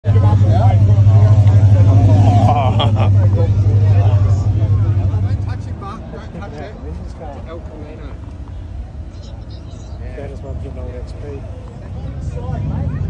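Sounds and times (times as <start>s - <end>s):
crowd chatter: 0.0s - 13.0s
vehicle engine humming: 0.0s - 13.0s.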